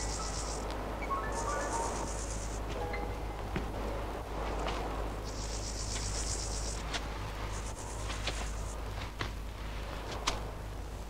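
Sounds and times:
insect trilling: 0.0s - 0.6s, 1.2s - 2.6s, 5.3s - 6.8s.

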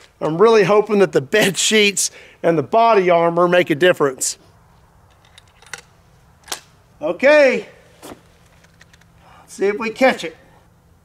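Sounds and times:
rifle handling clicks: 5.1s - 6.7s, 8.4s - 9.2s
sharp rifle click: 5.1s - 6.8s.

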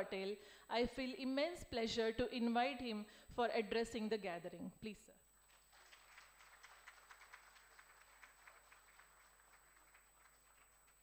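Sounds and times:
faint audience applause: 5.4s - 11.0s.

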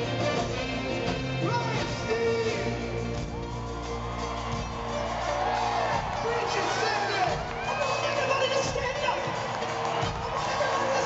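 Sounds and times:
live rock band playing: 0.0s - 11.0s.

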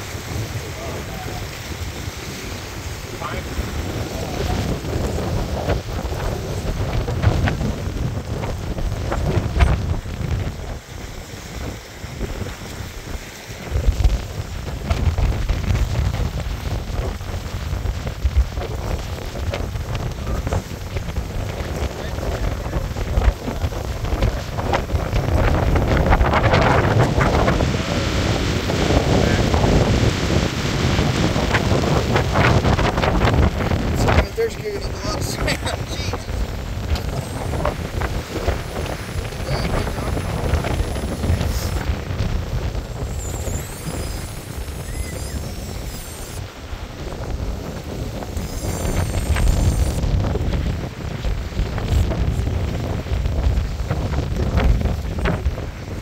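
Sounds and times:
wind buffeting microphone: 0.0s - 56.0s.

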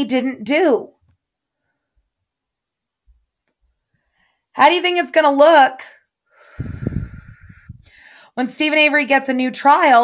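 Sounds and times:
breath blowing into microphone: 6.3s - 8.3s.

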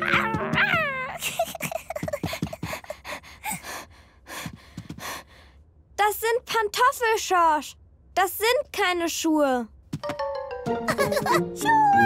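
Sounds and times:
cartoon child growling and roaring: 11.6s - 12.0s.

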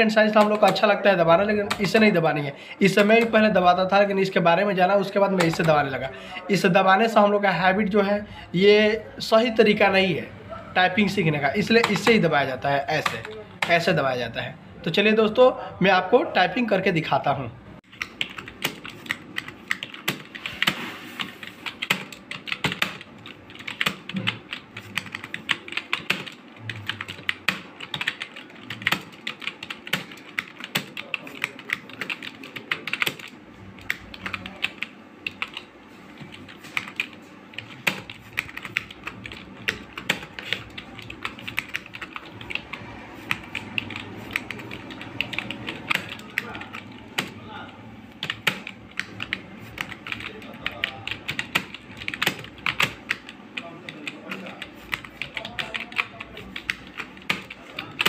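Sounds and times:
keyboard typing clicks: 17.9s - 47.4s, 48.2s - 58.0s.

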